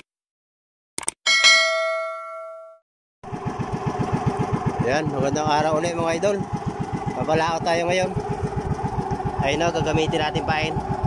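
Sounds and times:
bell chime: 0:01.3 - 0:02.8
boat engine chugging: 0:03.2 - 0:11.0.

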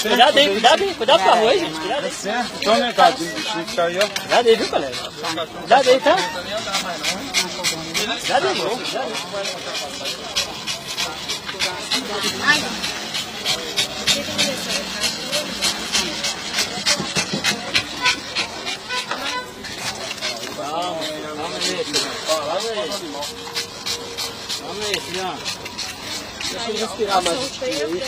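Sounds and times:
small dog panting fast: 0:00.0 - 0:28.0.

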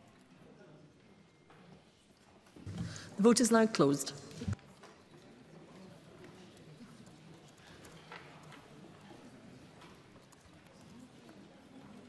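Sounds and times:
faint low murmuring voices: 0:04.2 - 0:12.0.

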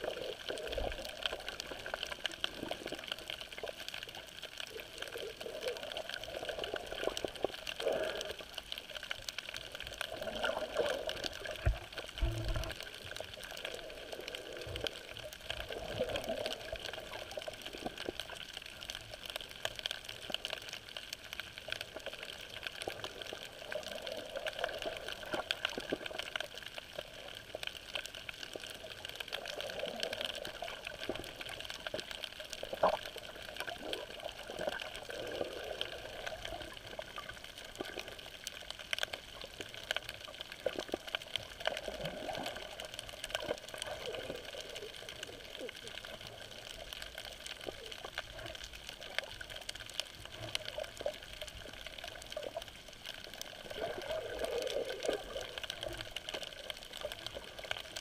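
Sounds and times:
muffled underwater noise: 0:00.0 - 0:58.0.

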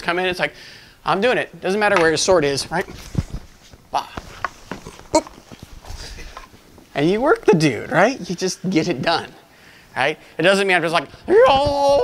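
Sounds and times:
footsteps on wooden floor: 0:03.0 - 0:06.9.

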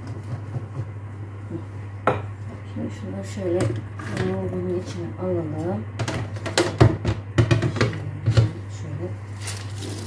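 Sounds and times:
steady low hum: 0:00.0 - 0:10.0
dishes clattering on steel drainer: 0:06.0 - 0:08.6.

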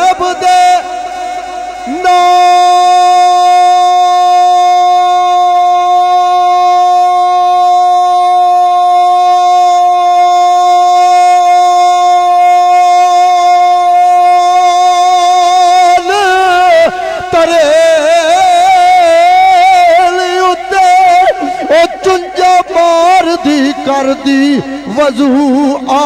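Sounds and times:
man singing a long note: 0:00.0 - 0:26.0.

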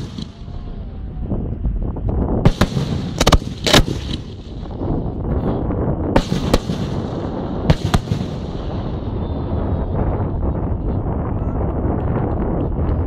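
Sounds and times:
fireworks bangs: 0:00.0 - 0:00.9, 0:02.4 - 0:05.2, 0:06.1 - 0:10.9
steady low rumble: 0:00.0 - 0:13.0.

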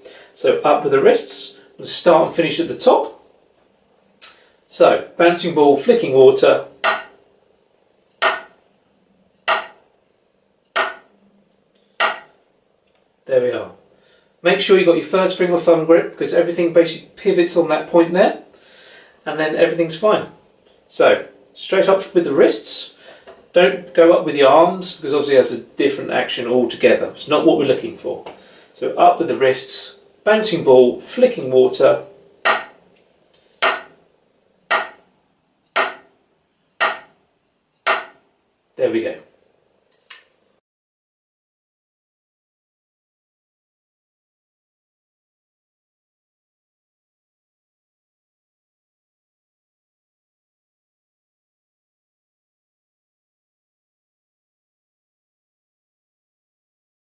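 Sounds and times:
drumsticks tapping practice pad: 0:06.8 - 0:07.2, 0:08.1 - 0:08.6, 0:09.4 - 0:09.8, 0:10.7 - 0:11.1, 0:12.0 - 0:12.4, 0:32.4 - 0:32.9, 0:33.6 - 0:34.0, 0:34.6 - 0:35.1, 0:35.7 - 0:36.2, 0:36.8 - 0:37.2, 0:37.8 - 0:38.2.

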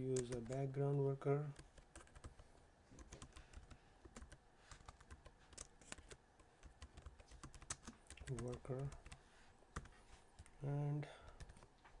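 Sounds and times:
computer keyboard typing: 0:00.0 - 0:00.6, 0:01.5 - 0:02.4, 0:03.0 - 0:09.2, 0:11.2 - 0:11.7.

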